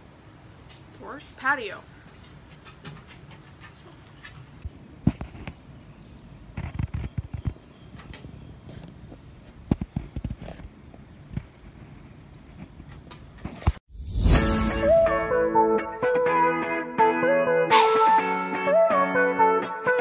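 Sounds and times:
faint outdoor background: 0.0 - 20.0.

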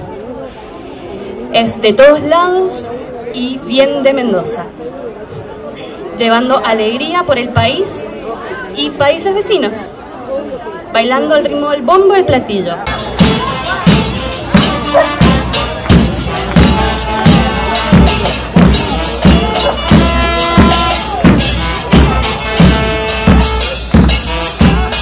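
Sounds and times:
bass drums with cymbal crashes: 12.9 - 25.0.

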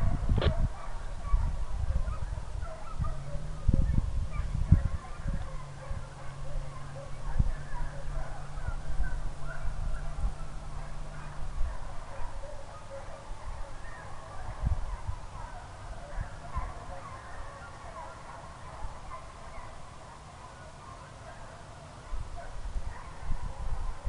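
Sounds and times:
hounds baying in the distance: 0.0 - 24.0.

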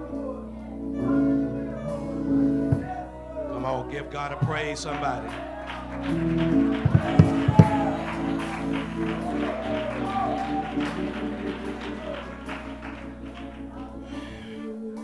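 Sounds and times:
held chords playing: 0.0 - 15.0
voices singing: 0.0 - 15.0.

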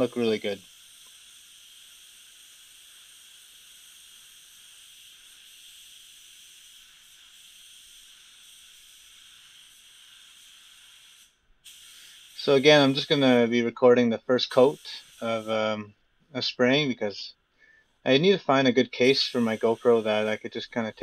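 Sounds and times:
paint spray gun hissing: 0.0 - 13.6, 14.2 - 15.9, 18.8 - 21.0.

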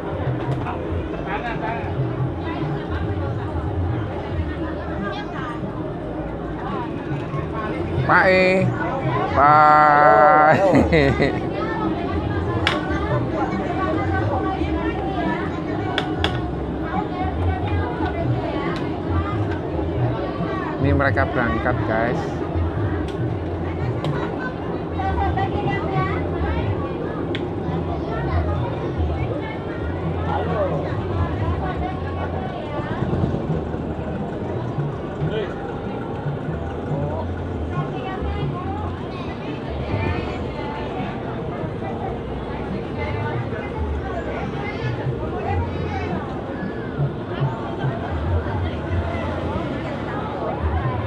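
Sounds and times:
people talking: 0.0 - 51.0.

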